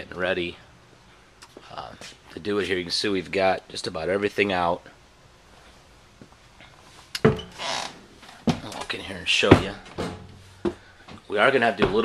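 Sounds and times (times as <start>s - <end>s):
footsteps on wooden steps: 8.3s - 12.0s.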